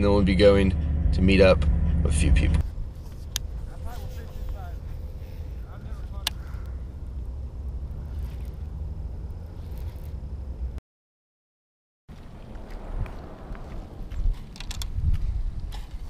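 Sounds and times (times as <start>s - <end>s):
low outdoor rumble: 0.0s - 10.8s, 12.1s - 16.0s.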